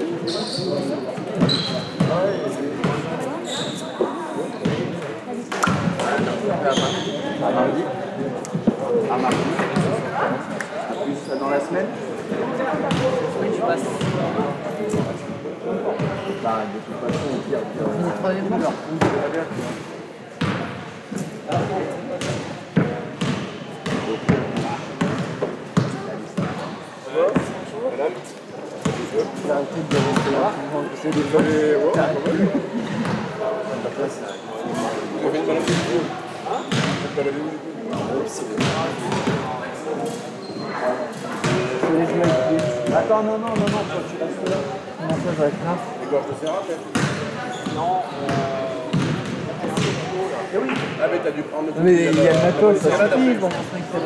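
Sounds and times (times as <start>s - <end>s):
people talking: 0.0s - 54.0s
basketballs bouncing on gym floor: 20.4s - 20.7s, 21.5s - 26.6s, 36.7s - 37.1s, 37.9s - 39.4s, 41.4s - 45.3s, 46.9s - 50.0s.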